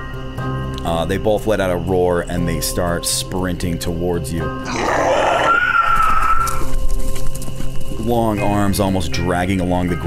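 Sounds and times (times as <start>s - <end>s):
background music: 0.0s - 10.0s
monster shriek: 4.6s - 6.6s.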